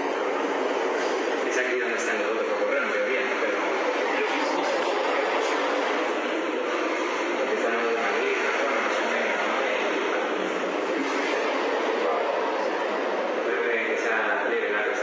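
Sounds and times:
loud machinery noise: 0:00.0 - 0:15.0
people talking: 0:01.4 - 0:15.0.

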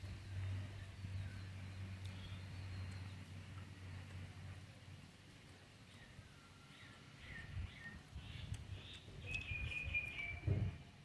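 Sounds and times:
small birds chirping: 0:00.0 - 0:11.0
low muffled thuds: 0:10.4 - 0:10.8.

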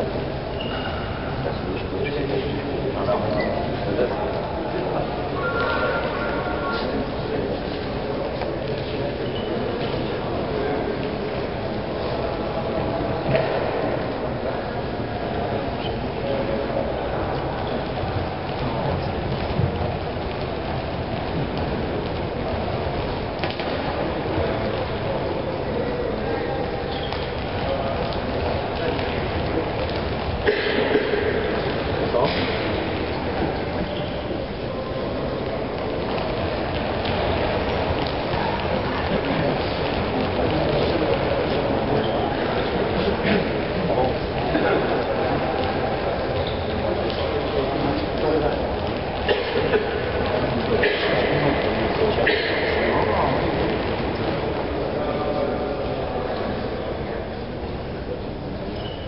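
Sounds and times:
faint indistinct voices: 0:00.0 - 0:59.0
steady rushing noise in sports hall: 0:00.0 - 0:59.0.

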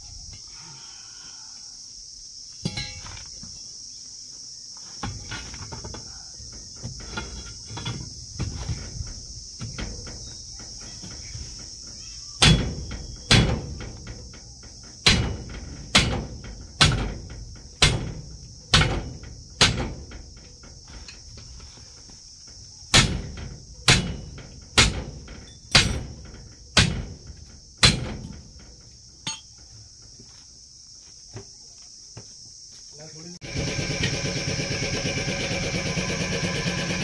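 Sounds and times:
high-pitched insect drone: 0:00.0 - 0:16.5
hammer striking steel wheel hub: 0:23.9 - 0:25.1, 0:25.7 - 0:26.1, 0:29.2 - 0:29.6.

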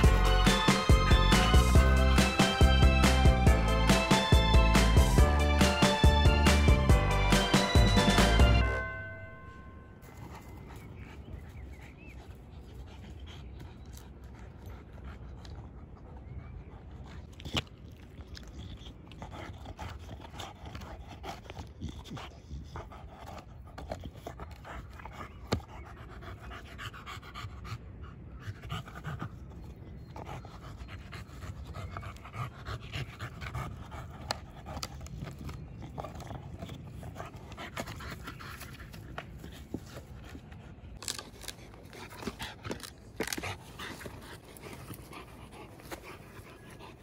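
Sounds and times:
dog panting: 0:00.0 - 0:08.7, 0:10.0 - 0:47.0
dog gnawing on wood: 0:12.8 - 0:26.4, 0:30.2 - 0:47.0
teeth clicking on wood: 0:17.2 - 0:25.8, 0:31.6 - 0:46.3.

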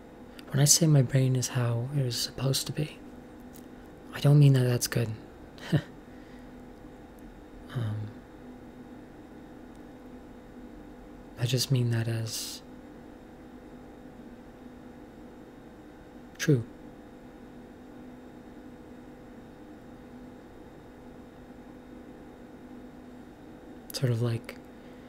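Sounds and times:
faint steady hum and hiss: 0:00.0 - 0:25.0.

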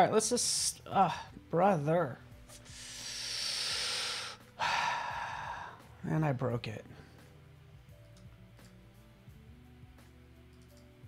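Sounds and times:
man sighing heavily: 0:02.8 - 0:05.9.

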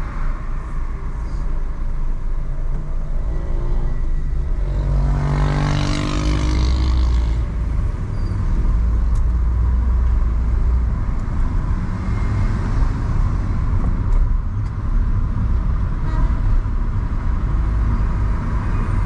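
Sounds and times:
car engines and tyres: 0:00.0 - 0:19.0.

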